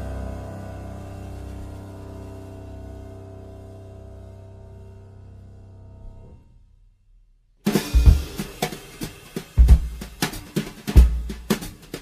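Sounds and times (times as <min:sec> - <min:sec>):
snare and cymbal hits: 0:07.6 - 0:12.0
heavy bass drum beats: 0:07.7 - 0:12.0.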